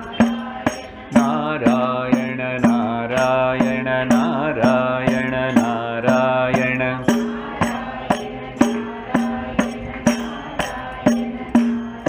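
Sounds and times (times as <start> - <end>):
man singing a chant: 0.0 - 8.2
frame drum with jingles: 0.0 - 12.0.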